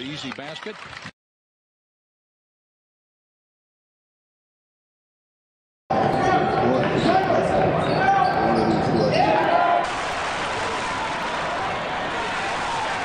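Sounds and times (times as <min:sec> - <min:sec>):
arena crowd noise: 0:05.9 - 0:13.0.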